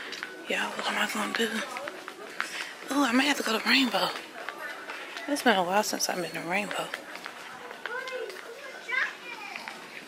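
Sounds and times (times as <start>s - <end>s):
faint background chatter: 0.0s - 10.0s.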